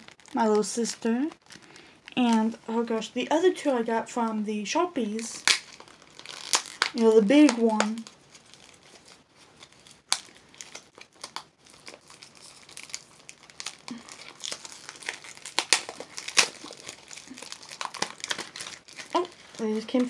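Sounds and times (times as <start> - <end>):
plastic packaging crinkling and tearing: 0.0 - 3.1, 5.0 - 20.0.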